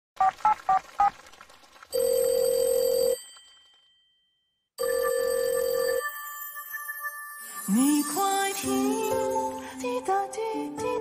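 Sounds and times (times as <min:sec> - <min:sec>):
telephone ringback tone: 0:02.0 - 0:03.5, 0:04.8 - 0:08.0.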